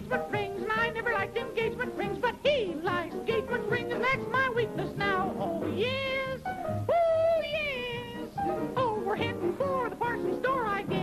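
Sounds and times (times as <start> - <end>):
high voice yodeling: 0.0 - 11.0.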